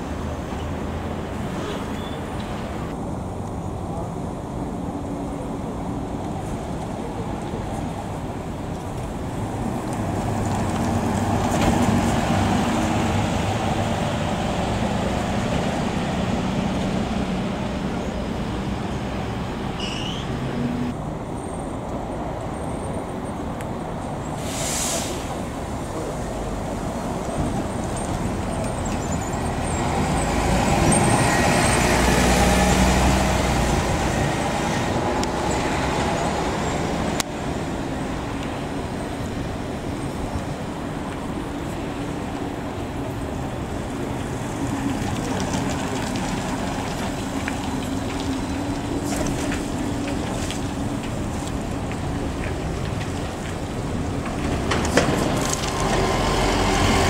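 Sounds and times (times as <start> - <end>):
bus engine passing: 0.0 - 57.0
bus engine pulling away: 0.0 - 57.0
air brakes hissing: 24.4 - 25.5.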